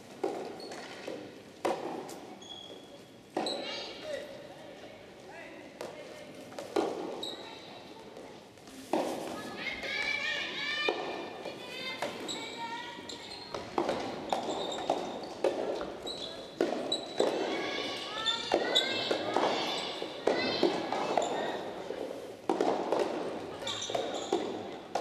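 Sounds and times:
tennis balls thudding: 0:00.1 - 0:02.3, 0:06.5 - 0:07.2, 0:13.5 - 0:16.0, 0:16.6 - 0:25.0
voices: 0:16.0 - 0:22.2.

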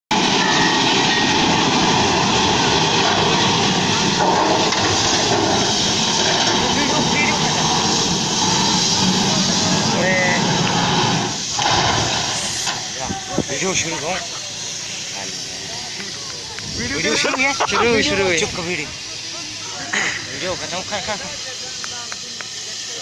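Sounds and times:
truck crashing and sliding: 0:00.1 - 0:13.0.

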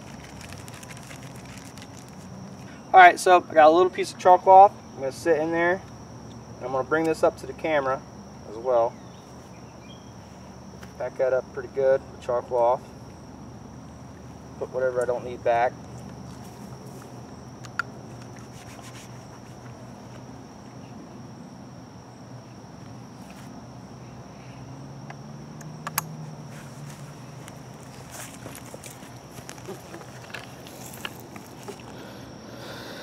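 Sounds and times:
gear clicking and rustling: 0:00.0 - 0:02.6, 0:26.5 - 0:31.9
crickets trilling: 0:00.0 - 0:33.0.

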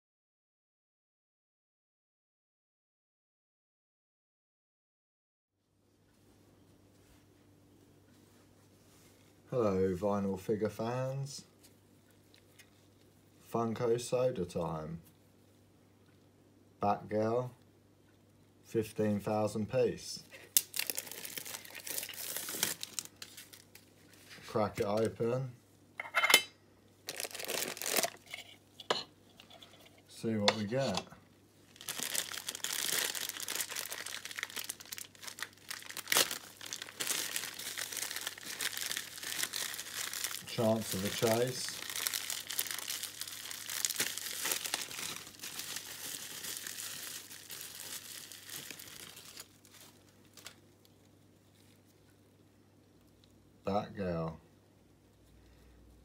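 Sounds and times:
packaging crinkling and rustling: 0:20.3 - 0:25.2, 0:27.0 - 0:28.6, 0:31.6 - 0:51.9.

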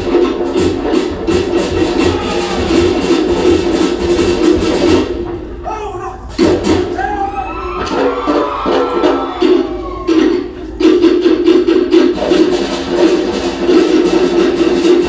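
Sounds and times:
slit log drums and bass drum: 0:00.0 - 0:15.0.

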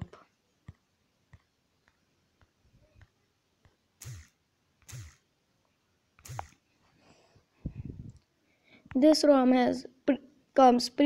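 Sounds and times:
fingers tapping touchscreen: 0:06.2 - 0:06.6.

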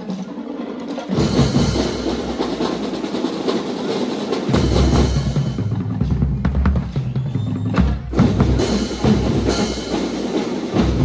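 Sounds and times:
snare drum roll: 0:00.0 - 0:11.0
bass drum beats: 0:04.5 - 0:09.8.

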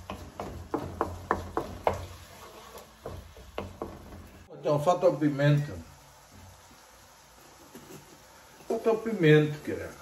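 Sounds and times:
spoon stirring sauce: 0:00.0 - 0:04.5
wooden spoon knocking on pan: 0:00.0 - 0:04.5.

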